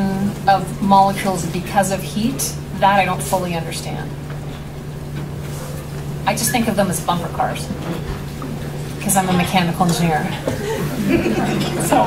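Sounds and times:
low room rumble: 0.0 - 12.0
steady low hum: 0.0 - 12.0.

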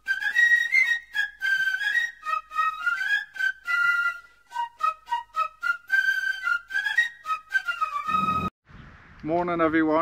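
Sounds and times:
high woodwind melody: 0.0 - 8.5.

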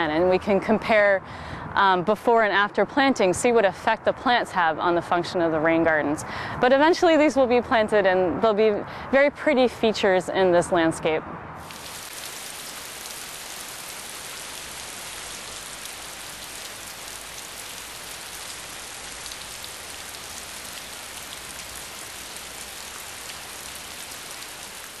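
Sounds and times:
steady rain falling: 11.6 - 25.0.

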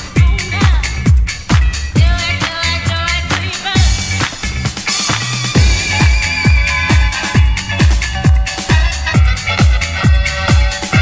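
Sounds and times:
kick drum: 0.0 - 2.4, 3.8 - 4.2, 5.6 - 11.0
high percussion: 0.0 - 11.0
house music: 0.0 - 11.0
held synth tones: 5.6 - 9.0.

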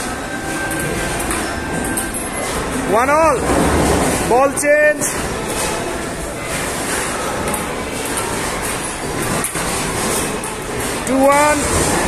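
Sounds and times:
loud hall background din: 0.0 - 12.0.

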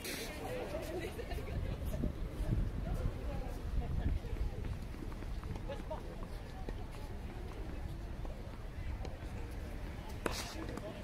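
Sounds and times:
people talking faintly: 0.0 - 11.0.

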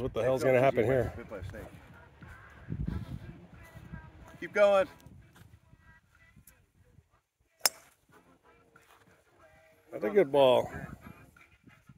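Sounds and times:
golf club striking ball: 7.6 - 7.9.

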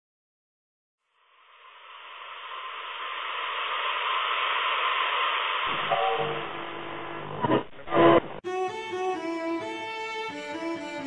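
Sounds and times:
radio static hiss: 1.2 - 8.4.

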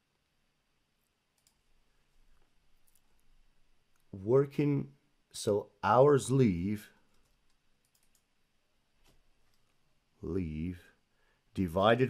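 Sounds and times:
computer keyboard clicks: 1.4 - 1.6, 7.1 - 8.3.

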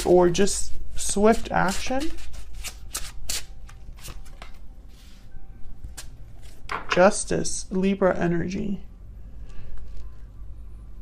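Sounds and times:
cards being shuffled: 1.3 - 5.2.

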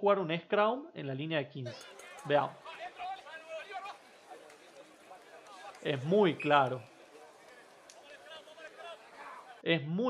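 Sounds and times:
faint distant voices: 1.7 - 9.6.

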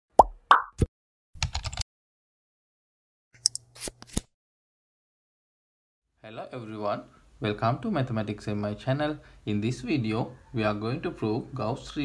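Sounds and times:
quick pops dropping in pitch: 0.2 - 0.9
keyboard typing clicks: 1.4 - 1.8.

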